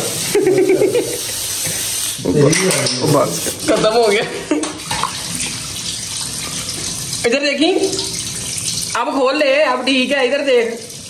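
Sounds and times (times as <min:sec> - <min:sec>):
tap water running into basin: 0:00.0 - 0:11.0.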